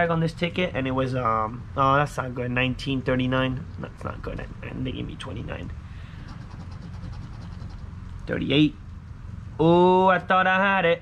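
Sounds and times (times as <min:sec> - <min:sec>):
coin scratching lottery ticket: 0:06.2 - 0:07.9.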